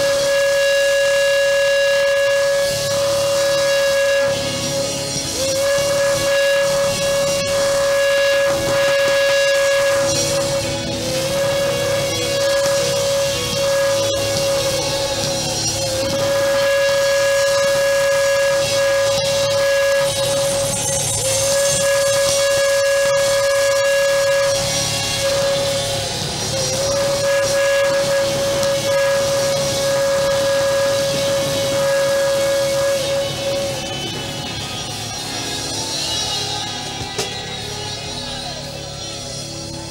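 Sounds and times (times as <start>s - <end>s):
ram's horn long blasts: 0.0s - 39.9s.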